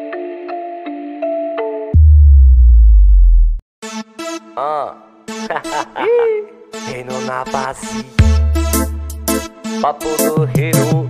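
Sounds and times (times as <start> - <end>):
deep synthesized sub-bass tone: 2.0 - 3.6
bright synth music: 3.8 - 11.0.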